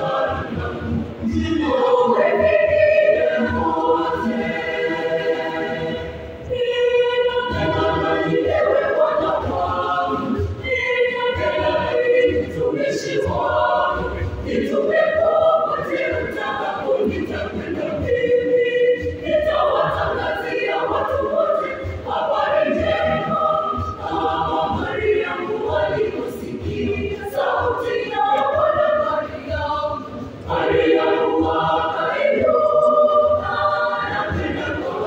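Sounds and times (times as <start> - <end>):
youth choir singing: 0.0 - 35.0.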